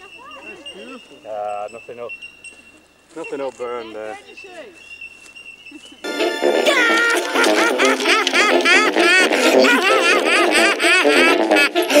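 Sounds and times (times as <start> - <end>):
cartoon background music: 6.1 - 12.0
high-pitched squeaky cartoon laugh: 6.6 - 12.0.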